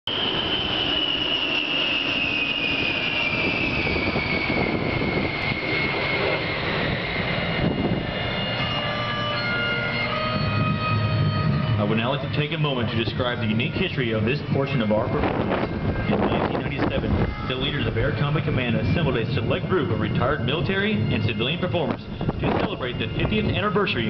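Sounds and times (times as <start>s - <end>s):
jets flying past: 0.1s - 24.0s.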